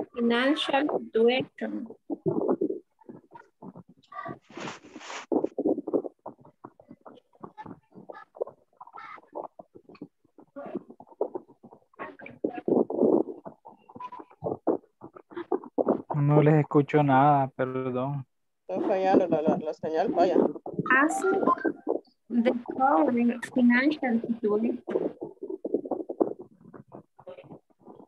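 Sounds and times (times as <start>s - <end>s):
garbled voice over video call: 0.0s - 5.2s, 5.8s - 28.0s.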